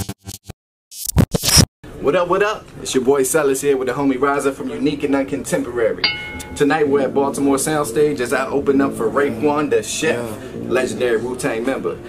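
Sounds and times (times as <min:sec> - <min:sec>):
glitchy scratch sound effect: 0:00.3 - 0:01.6.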